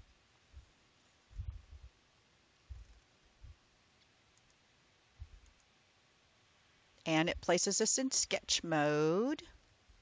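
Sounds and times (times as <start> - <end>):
computer mouse clicks: 4.0 - 4.6, 5.3 - 5.7.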